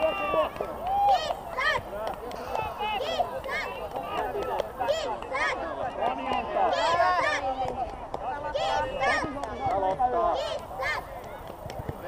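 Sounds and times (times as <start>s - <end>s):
young players shouting: 0.0s - 11.3s.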